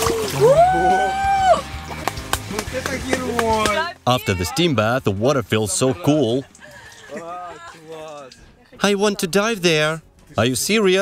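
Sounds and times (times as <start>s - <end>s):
water splashing and sloshing: 0.0s - 10.4s.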